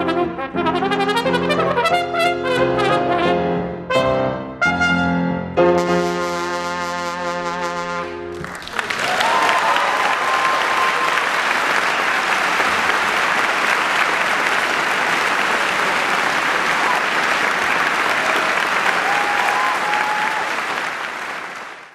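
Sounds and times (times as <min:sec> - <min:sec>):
audience applauding: 0:08.3 - 0:21.9.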